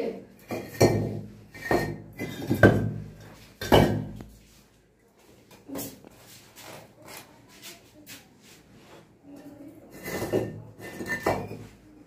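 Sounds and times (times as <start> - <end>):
bricks clinking and scraping: 0.4 - 4.1, 9.9 - 11.7.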